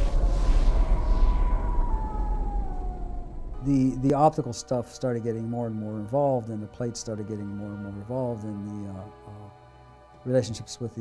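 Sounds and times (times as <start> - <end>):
deep rumble: 0.0 - 6.0
high tone gliding downward: 0.0 - 6.7.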